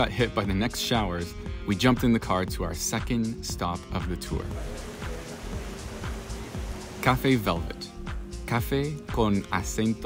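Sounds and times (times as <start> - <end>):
background music: 0.0 - 10.0
steady rain falling: 4.6 - 7.4.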